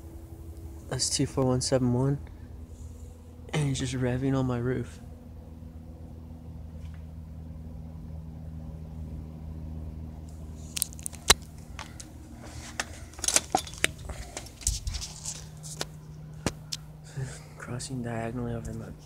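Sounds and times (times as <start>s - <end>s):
aircraft engine droning: 0.0s - 19.0s
sharp clicks and crackles: 10.6s - 12.1s.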